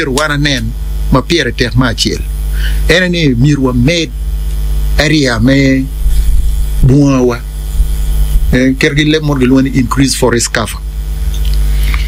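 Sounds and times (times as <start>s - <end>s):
electrical mains hum: 0.0s - 12.0s
person speaking: 5.0s - 10.8s.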